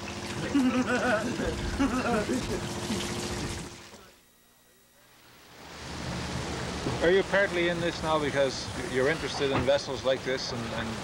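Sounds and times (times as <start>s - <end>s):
engine hum: 5.6s - 11.0s
people talking: 7.0s - 11.0s.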